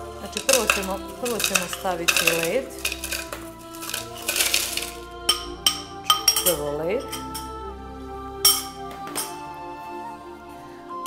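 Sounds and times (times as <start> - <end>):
background music: 0.0 - 11.0
metal spoon scraping ice: 0.2 - 7.5
spoon clinking on bowl: 0.3 - 7.5, 8.4 - 9.4.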